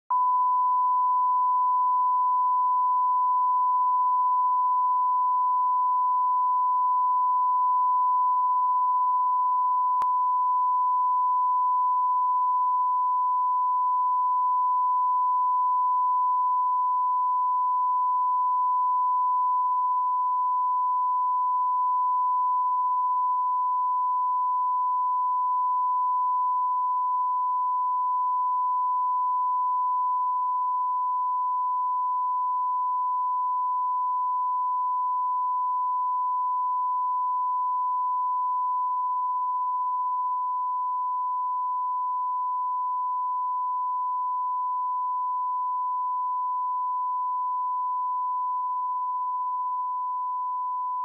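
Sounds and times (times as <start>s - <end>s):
steady test tone beep: 0.1s - 51.0s.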